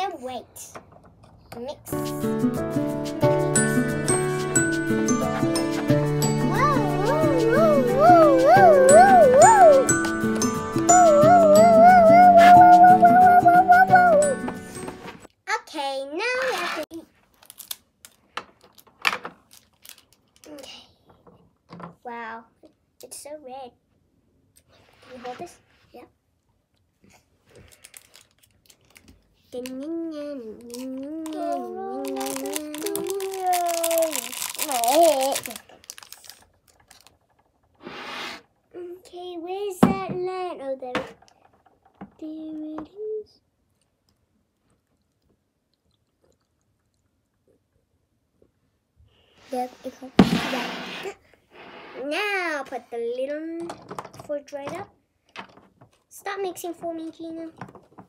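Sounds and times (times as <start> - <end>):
child's wordless voice: 0.0 - 2.1, 6.4 - 9.9, 10.9 - 14.4, 15.5 - 17.1, 20.4 - 21.3, 22.0 - 23.8, 25.0 - 26.2, 29.4 - 36.4, 38.8 - 41.2, 42.0 - 43.5, 49.4 - 51.2, 52.0 - 55.0, 56.1 - 57.7.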